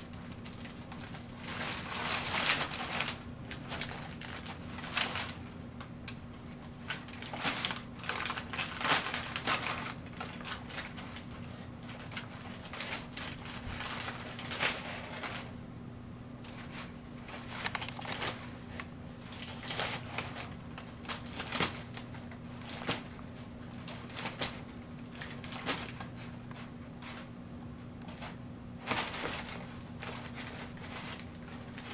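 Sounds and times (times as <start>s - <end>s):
packing paper crinkling: 0.0s - 15.5s, 16.5s - 27.3s, 28.1s - 31.9s.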